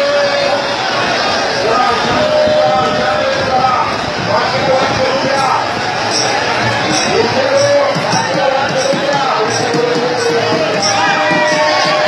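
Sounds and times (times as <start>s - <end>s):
crowd voices: 0.0s - 12.0s
drums thumping: 4.8s - 12.0s.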